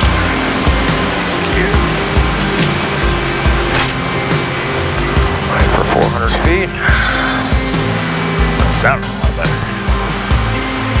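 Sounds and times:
turboprop engines drone: 0:00.0 - 0:11.0.

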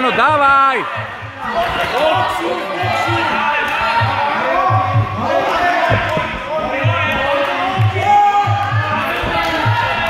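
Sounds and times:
short low thuds: 0:04.0 - 0:09.8.

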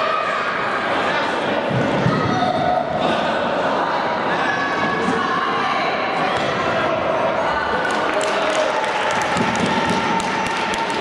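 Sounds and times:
people calling out in a hall: 0:00.0 - 0:11.0.

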